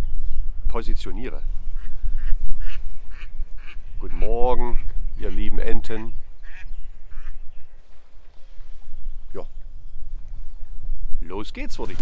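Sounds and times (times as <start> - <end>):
wind buffeting microphone: 0.0 - 12.0
duck quacking: 1.8 - 7.4.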